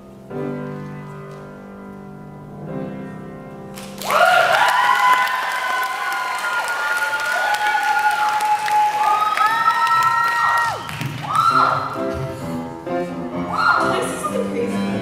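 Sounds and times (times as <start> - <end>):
keyboard accompaniment: 0.0 - 4.0, 11.5 - 15.0
audience applauding and cheering: 3.7 - 12.1
whoops: 4.0 - 12.0, 13.5 - 14.1.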